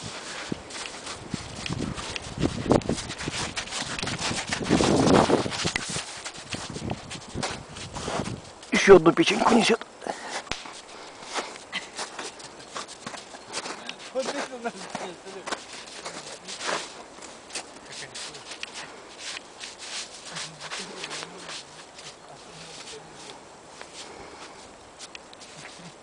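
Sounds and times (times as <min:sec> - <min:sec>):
steps crunching in snow: 0:00.0 - 0:09.7, 0:10.3 - 0:26.0.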